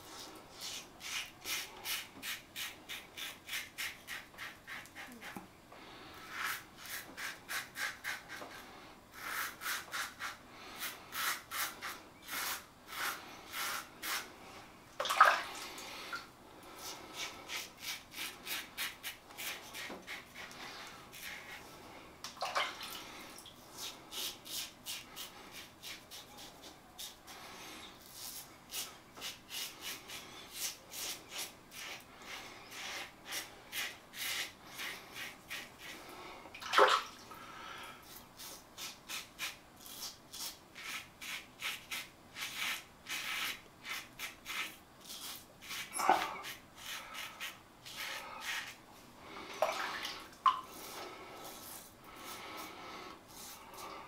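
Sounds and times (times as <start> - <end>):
razor scraping stubble: 9.2 - 14.3, 38.1 - 48.8.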